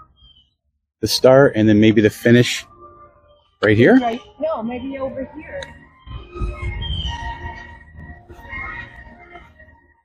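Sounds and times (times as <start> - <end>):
faint background music: 1.0 - 10.0
wind rumbling on microphone: 4.5 - 9.1.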